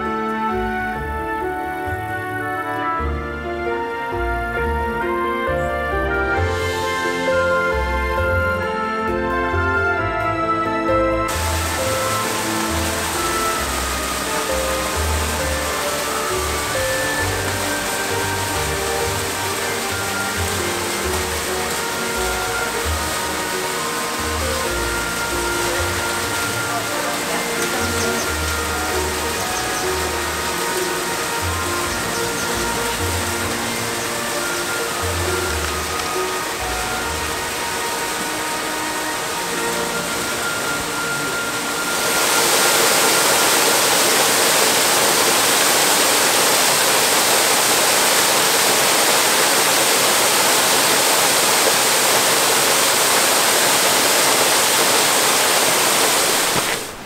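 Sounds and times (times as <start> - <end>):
background music: 0.0 - 56.0
waterfall rushing: 0.0 - 57.0.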